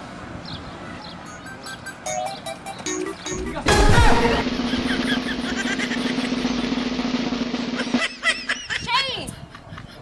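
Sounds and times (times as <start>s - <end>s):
steady engine drone: 3.3s - 8.2s.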